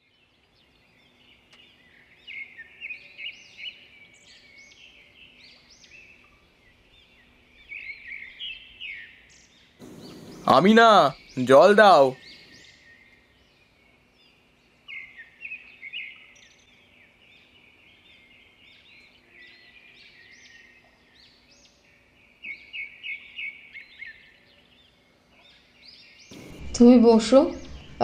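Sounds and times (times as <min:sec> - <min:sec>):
birds chirping: 0:00.0 - 0:28.0
faint low hum: 0:09.8 - 0:15.4, 0:26.3 - 0:28.0.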